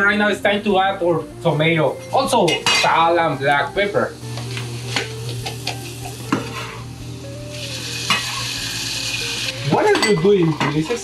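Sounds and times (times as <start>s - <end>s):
onions sizzling in a saucepan: 2.5s - 11.0s.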